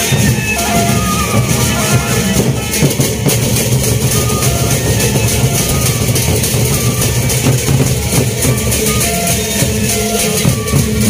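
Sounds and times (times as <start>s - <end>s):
barrel drums beating: 0.0s - 11.0s
cymbals clashing: 0.0s - 11.0s.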